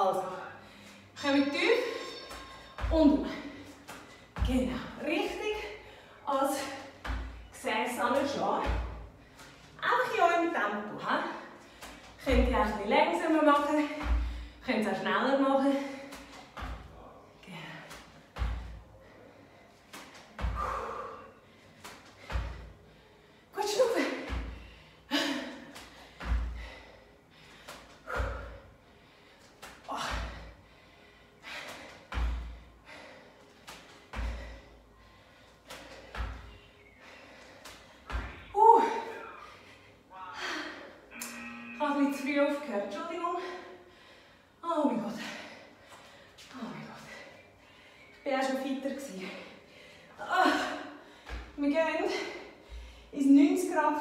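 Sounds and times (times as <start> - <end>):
bare feet thudding on a mat: 2.2 - 5.8, 6.6 - 9.8, 11.7 - 14.7, 15.7 - 17.0, 17.6 - 18.8, 19.9 - 21.2, 21.8 - 22.8, 25.6 - 26.9, 31.5 - 34.7, 35.7 - 36.6, 37.5 - 38.6
hard breathing: 18.8 - 23.6, 24.4 - 38.5.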